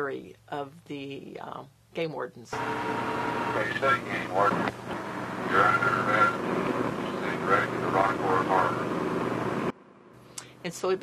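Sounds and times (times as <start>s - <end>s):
boat engine drone: 2.6s - 9.7s.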